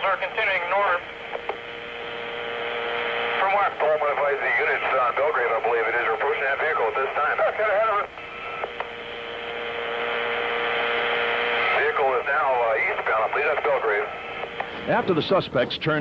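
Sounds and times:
radio channel hiss: 0.0s - 16.0s
voice over police radio: 3.4s - 8.1s, 11.6s - 14.1s.

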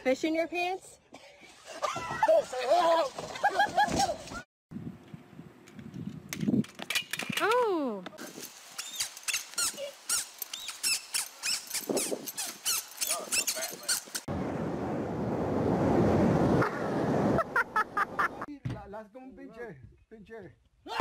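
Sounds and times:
short high squeaks: 8.7s - 14.3s
ocean surf rushing: 14.3s - 18.5s.

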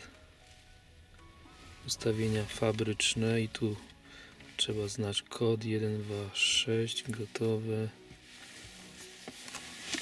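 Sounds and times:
faint car stereo music: 0.0s - 10.0s.

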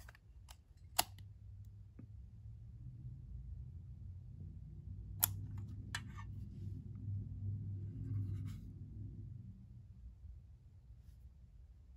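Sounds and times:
low hum: 1.6s - 11.9s.

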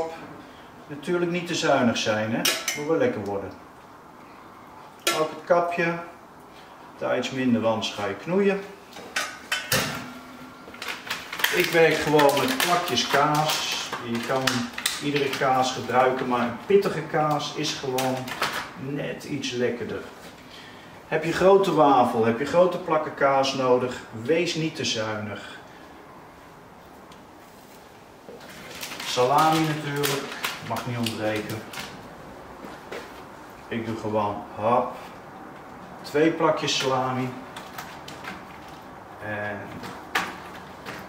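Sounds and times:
soft handling rustles: 26.7s - 34.0s.

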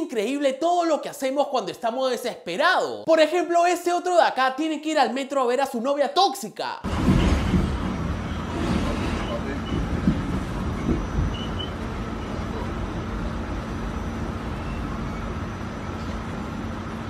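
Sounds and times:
subway train rumble and rattle: 6.9s - 17.0s.

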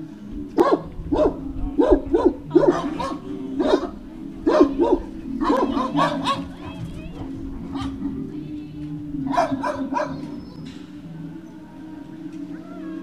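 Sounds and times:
dog barking: 0.6s - 8.2s, 9.2s - 10.4s.

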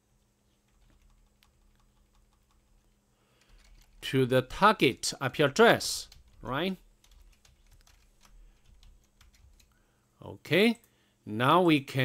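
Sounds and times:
keyboard typing: 0.6s - 4.0s, 6.0s - 9.8s.

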